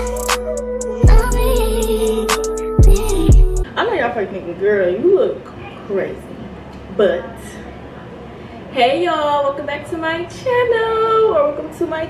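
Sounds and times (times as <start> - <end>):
young woman singing: 0.0 - 3.7.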